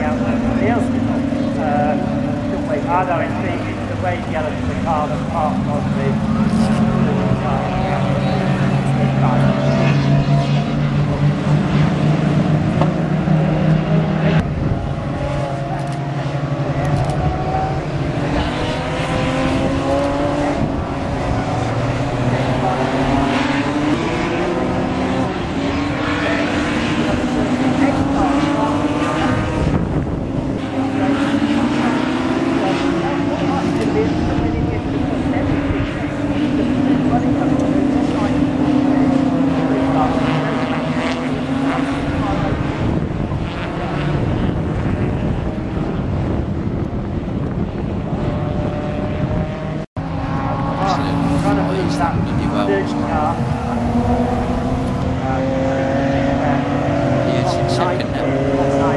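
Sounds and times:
race car engines revving: 0:00.0 - 0:58.9.

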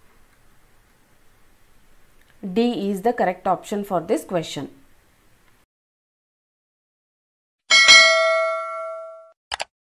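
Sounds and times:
bright bell ding: 0:07.7 - 0:09.4.

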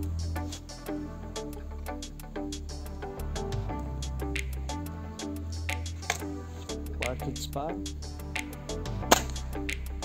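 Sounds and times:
background music: 0:00.0 - 0:10.0
air rifle shot: 0:09.1 - 0:09.4.

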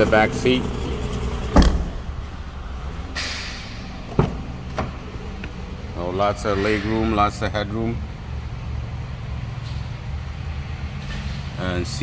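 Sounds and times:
low hum: 0:00.0 - 0:11.4
car door swish: 0:01.5 - 0:02.2
car door latch click: 0:01.6 - 0:02.0.

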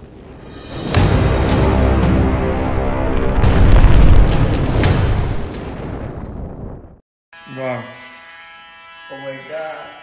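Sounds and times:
deep cinematic boom: 0:00.0 - 0:07.0
crackling: 0:03.1 - 0:06.9.

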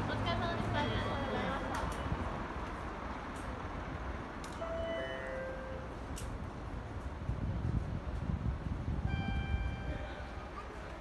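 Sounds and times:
city noise: 0:00.0 - 0:11.0
short electronic beep tones: 0:09.1 - 0:10.1
faint voices: 0:09.7 - 0:11.0.

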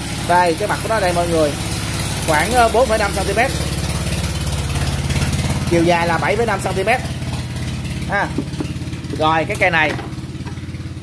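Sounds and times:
small engine idling: 0:00.0 - 0:11.0.

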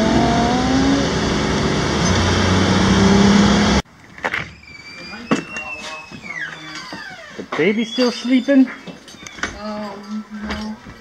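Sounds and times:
road and engine noise in car: 0:00.0 - 0:03.8.

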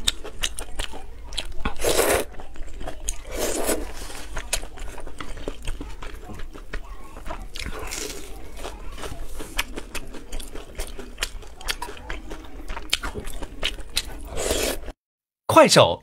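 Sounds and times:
wet chewing: 0:00.0 - 0:15.0
slurping noodles: 0:01.4 - 0:06.4, 0:07.1 - 0:12.2, 0:13.4 - 0:15.0.

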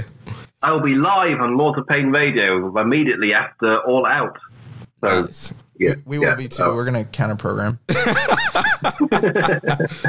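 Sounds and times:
man talking: 0:00.0 - 0:07.9.

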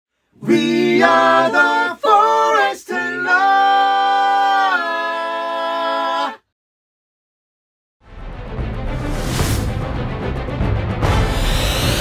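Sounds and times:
voices singing a cappella: 0:00.4 - 0:06.5.

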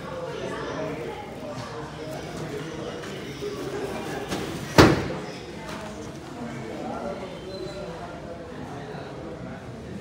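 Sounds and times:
people's voices: 0:00.0 - 0:10.0.

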